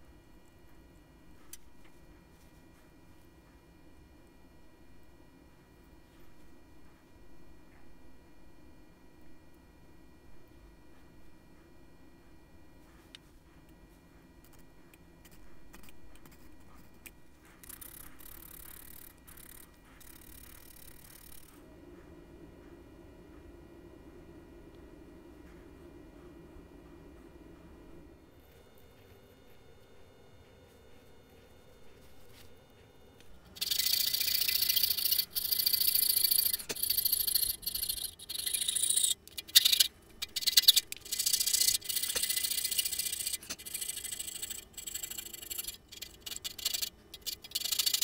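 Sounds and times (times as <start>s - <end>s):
faint low hum: 0.0s - 48.0s.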